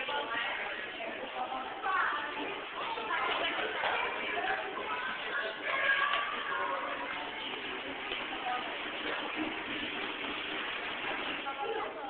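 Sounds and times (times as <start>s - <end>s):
babble of many voices: 0.0s - 12.0s.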